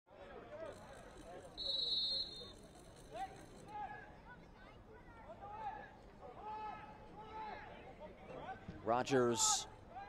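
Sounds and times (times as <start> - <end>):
referee's whistle blast: 1.6 - 2.5.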